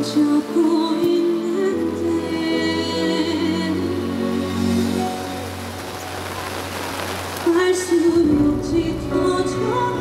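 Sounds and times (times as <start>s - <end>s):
slow instrumental ballad over speakers: 0.0s - 10.0s
rain hissing: 0.4s - 9.7s.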